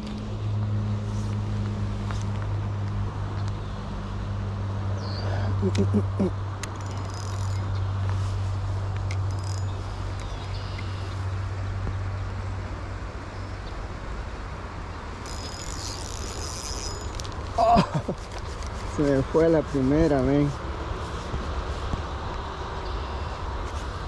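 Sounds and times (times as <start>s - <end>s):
flowing river: 0.0s - 22.8s
light rain: 17.3s - 18.5s.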